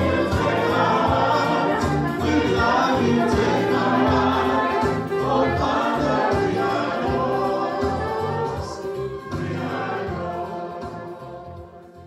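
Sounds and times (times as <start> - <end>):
choir singing a hymn: 0.0 - 12.0
low accompaniment: 0.0 - 12.0.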